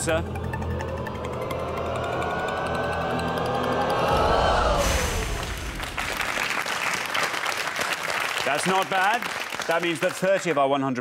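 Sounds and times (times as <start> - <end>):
electronic tone sliding in pitch: 0.0 - 5.5
audience applause: 2.6 - 11.0
sudden burst of noise: 4.0 - 7.2.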